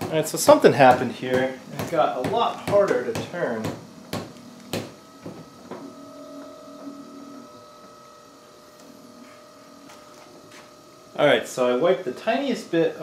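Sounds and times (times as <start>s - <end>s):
motor faint whine: 0.6s - 13.0s.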